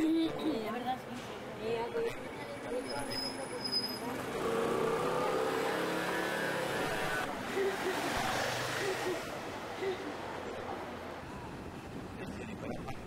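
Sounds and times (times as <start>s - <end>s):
nearby voices: 4.6s - 11.2s.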